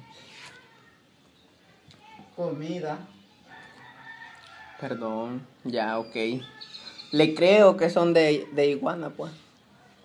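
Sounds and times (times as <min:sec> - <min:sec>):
rooster crowing: 0:03.5 - 0:05.5.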